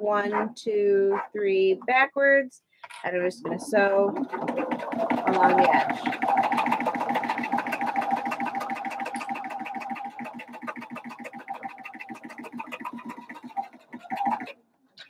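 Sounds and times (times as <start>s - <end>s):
sewing machine stitching: 3.7s - 14.6s.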